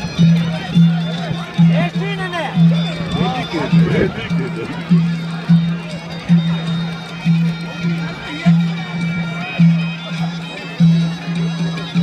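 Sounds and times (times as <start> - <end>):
shrill double-reed pipe melody: 0.0 - 11.8
crowd voices: 0.0 - 12.0.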